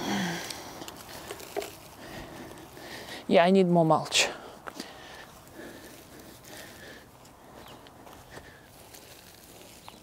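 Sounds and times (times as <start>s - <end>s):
hands spreading mulch: 8.1s - 10.0s.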